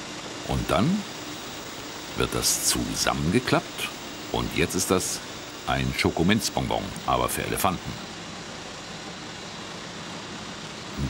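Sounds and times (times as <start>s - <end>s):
factory background hiss: 0.0s - 11.0s.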